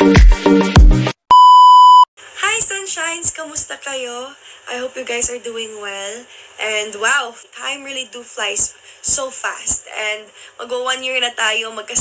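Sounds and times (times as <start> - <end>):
loud electronic beep: 1.3 - 2.1
woman speaking: 2.4 - 12.0.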